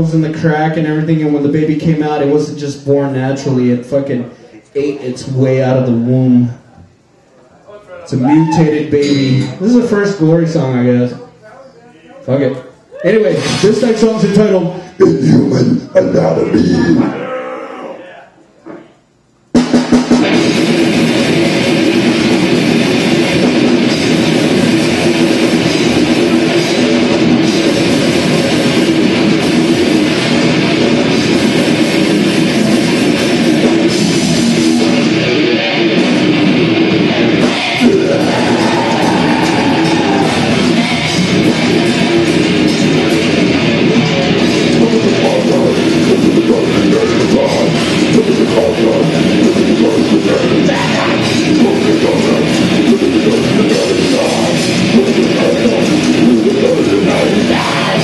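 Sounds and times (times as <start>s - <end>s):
heavy metal band playing: 8.2s - 10.8s, 13.3s - 17.3s, 19.5s - 58.0s.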